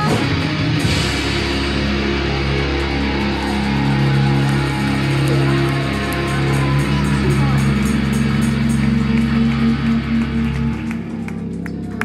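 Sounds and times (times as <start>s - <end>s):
drum and cymbal hits: 0.0s - 10.8s
distorted electric guitars and bass: 0.0s - 12.0s.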